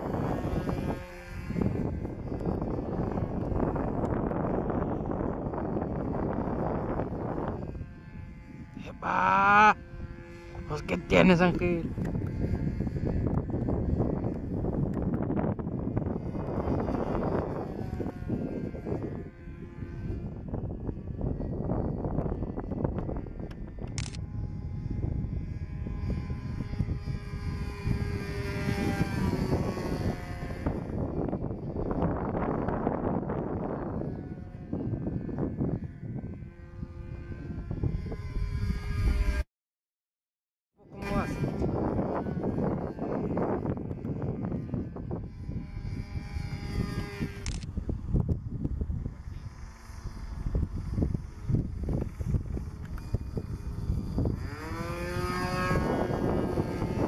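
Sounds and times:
wind buffeting microphone: 0.0s - 39.4s, 40.8s - 57.0s
model plane engine droning: 0.0s - 39.5s, 40.8s - 57.0s.

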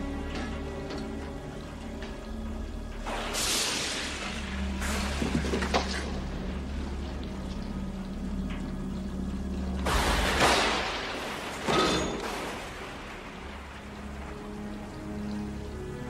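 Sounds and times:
orchestral film score: 0.0s - 16.0s
steady rain: 0.0s - 16.0s
rock slammed against metal pipe: 9.8s - 12.8s.

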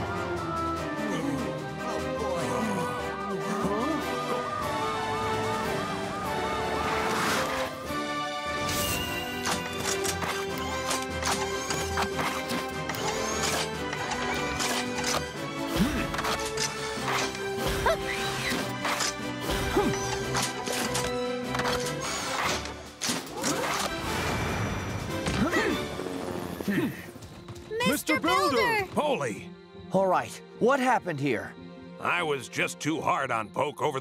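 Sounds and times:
cartoon background music: 0.0s - 34.0s.

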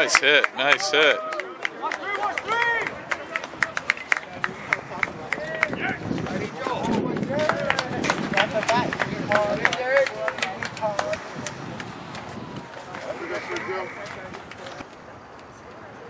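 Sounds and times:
open-air ambience: 0.0s - 16.0s
people calling out: 12.6s - 14.4s.

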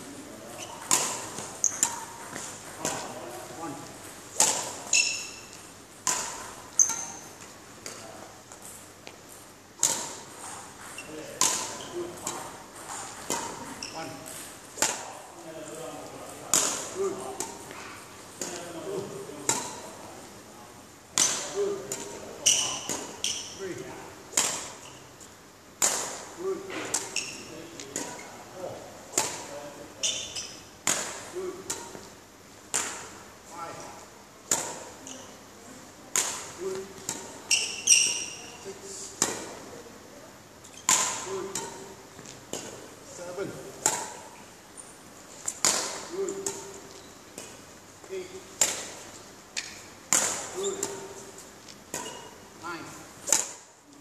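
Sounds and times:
shoe squeaks: 0.5s - 2.4s, 4.9s - 5.6s, 6.8s - 7.4s, 10.8s - 12.1s, 12.9s - 14.2s, 22.4s - 23.6s, 27.1s - 27.5s, 30.0s - 30.7s, 37.5s - 38.7s, 40.6s - 40.9s, 50.6s - 51.1s, 52.0s - 52.4s.

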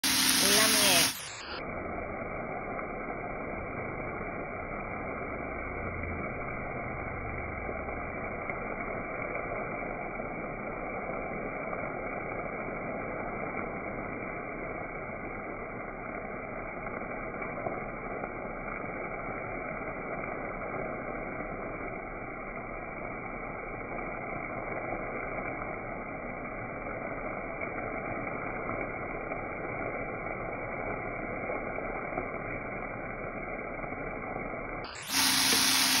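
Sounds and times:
beans sizzling in a frying pan: 0.0s - 36.0s.

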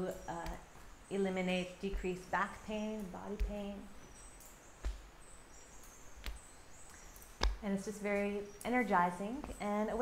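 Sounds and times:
wildlife chirping: 0.0s - 10.0s.

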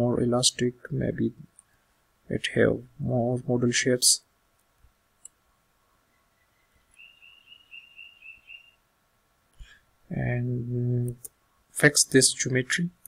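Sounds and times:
high chirping trill: 6.2s - 8.8s.

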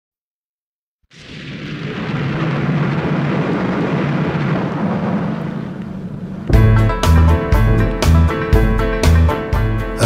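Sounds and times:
ocean rumbling rush: 1.1s - 10.0s.

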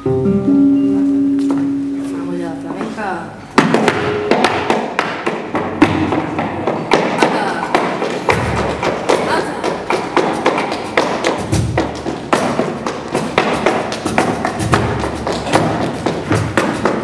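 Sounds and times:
flamenco guitar: 0.0s - 17.0s
sharp percussive strikes: 3.6s - 17.0s.

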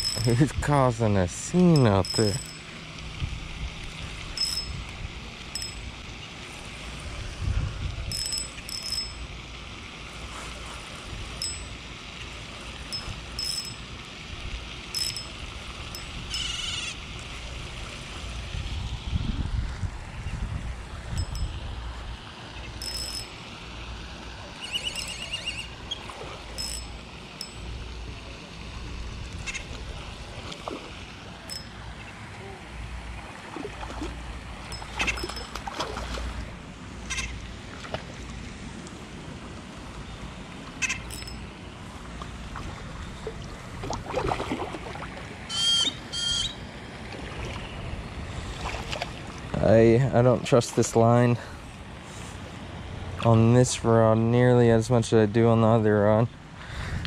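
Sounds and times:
fishing rod and reel handling: 0.0s - 0.6s, 1.6s - 3.1s, 3.8s - 5.9s, 8.0s - 9.3s, 11.4s - 11.8s, 12.9s - 13.9s, 14.9s - 16.8s, 21.1s - 21.6s, 22.7s - 23.4s, 24.6s - 27.7s, 31.5s - 31.8s, 34.7s - 35.9s, 40.8s - 41.5s
wind rumble on microphone: 2.1s - 6.1s, 6.8s - 9.2s, 15.9s - 22.9s, 56.7s - 57.0s
warbling call: 14.9s - 17.1s, 24.5s - 27.6s, 34.7s - 35.6s, 40.8s - 41.4s, 45.4s - 46.6s
short high chirps: 24.6s - 25.7s.

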